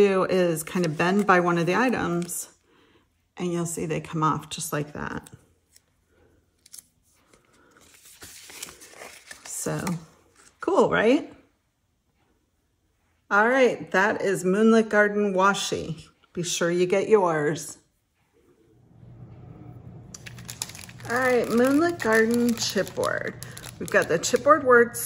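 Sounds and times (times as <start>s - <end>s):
paper sticker roll unrolling: 6.6s - 10.5s, 20.1s - 25.0s
faint steady hum: 18.4s - 25.0s
plastic bags crinkling: 20.1s - 25.0s.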